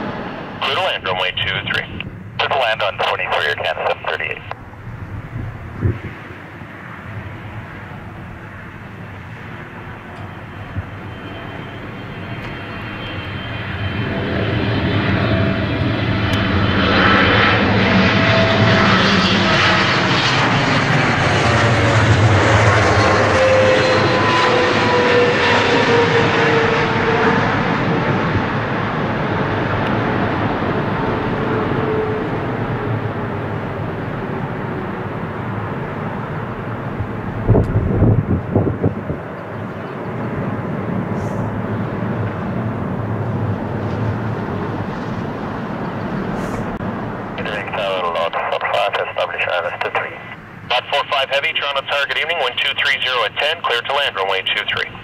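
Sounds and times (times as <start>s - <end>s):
low rumbling surges: 0.0s - 24.1s
jet engine roar with falling whine: 0.0s - 55.0s.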